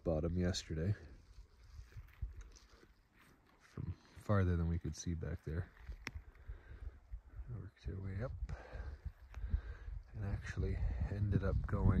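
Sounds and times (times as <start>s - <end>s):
wind rumble on microphone: 1.0s - 2.7s, 5.5s - 12.0s.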